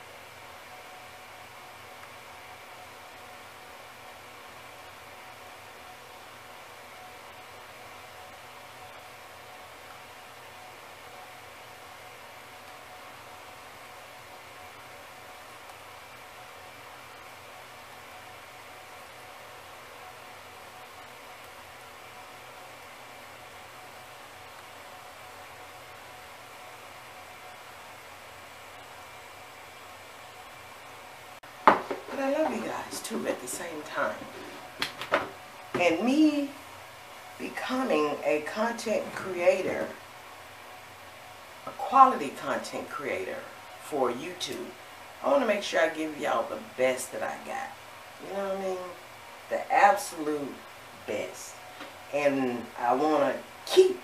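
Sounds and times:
low hiss of room tone: 0:00.0 - 0:54.0.

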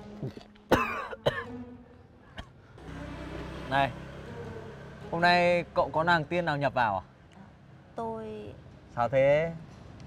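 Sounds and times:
person coughing: 0:00.7 - 0:01.6.

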